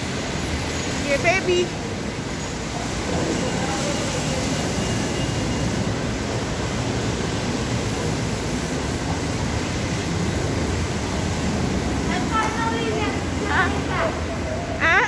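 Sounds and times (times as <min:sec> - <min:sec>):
steady rushing noise: 0:00.0 - 0:14.9.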